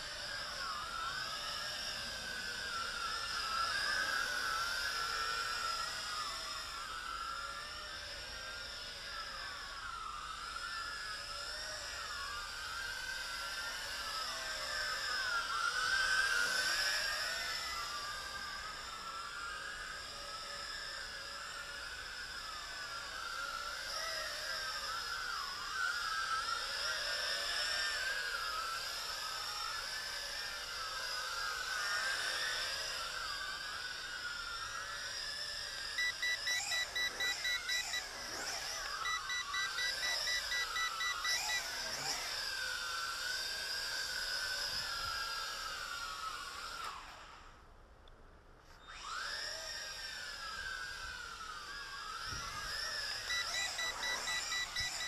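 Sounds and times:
drone propellers whirring: 0.0s - 47.7s, 48.8s - 55.0s
quick electronic beeps: 36.0s - 41.7s, 53.3s - 55.0s.

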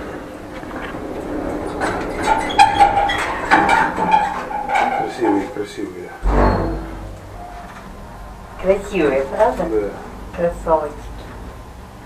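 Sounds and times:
low thump: 6.2s - 7.2s.

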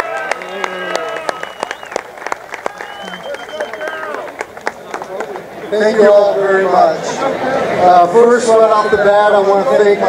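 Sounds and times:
voices calling out: 0.0s - 2.0s, 2.6s - 7.8s
crowd applauding: 0.0s - 6.6s.

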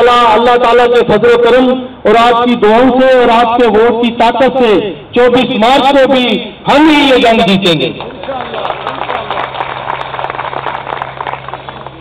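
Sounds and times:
crowd applauding: 8.0s - 12.0s.

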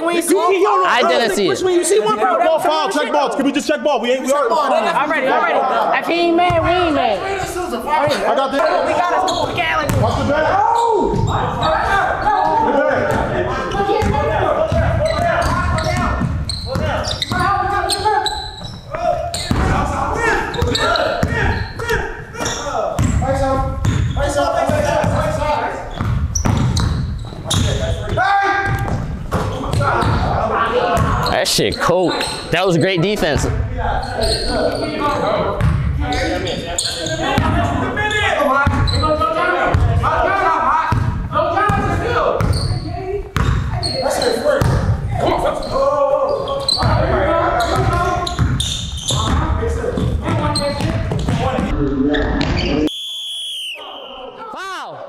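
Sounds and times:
players' voices echoing: 0.0s - 52.9s
players shouting: 4.4s - 25.9s
basketball bouncing on wood floor: 9.8s - 10.2s, 26.0s - 27.7s, 47.7s - 51.7s.

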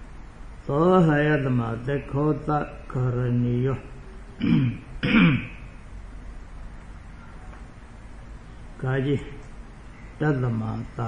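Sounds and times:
man clearing his throat: 4.4s - 5.7s.

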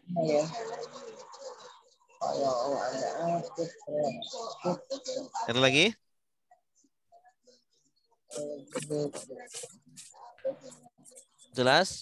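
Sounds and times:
indistinct murmured voices: 0.0s - 5.7s, 8.3s - 12.0s.

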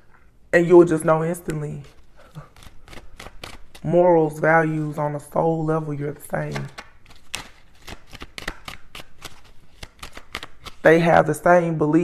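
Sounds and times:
cards shuffled by hand: 1.4s - 3.9s, 6.2s - 11.1s.

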